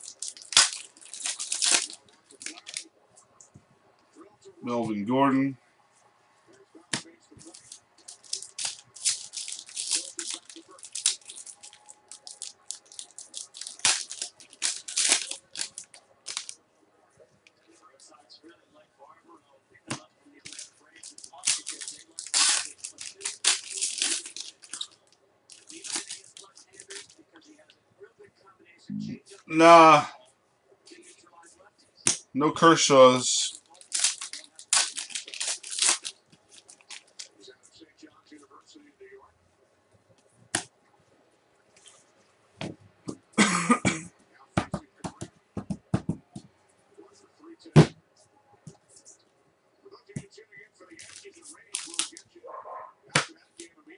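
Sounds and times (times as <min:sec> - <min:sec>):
card pack wrappers tearing: 0:00.0 - 0:02.9, 0:07.4 - 0:16.6, 0:20.4 - 0:27.2, 0:33.4 - 0:37.4, 0:51.0 - 0:52.2
cards handled: 0:51.0 - 0:52.2
card pack clicks and snaps: 0:51.8 - 0:52.2.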